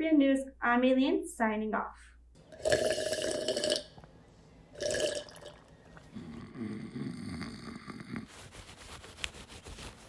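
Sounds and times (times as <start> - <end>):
slurping sips from teacup: 2.5 - 4.0, 4.8 - 8.3
low rippling snore: 4.8 - 8.3.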